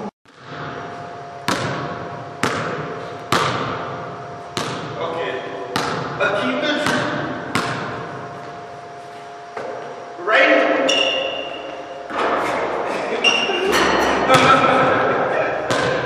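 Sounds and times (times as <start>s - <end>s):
basketball bouncing on wooden floor: 1.5s - 5.0s, 5.7s - 6.2s, 6.8s - 8.0s, 15.6s - 16.0s.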